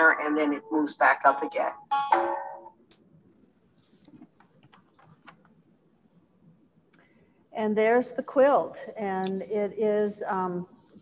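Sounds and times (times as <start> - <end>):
short held tone: 1.6 - 2.8.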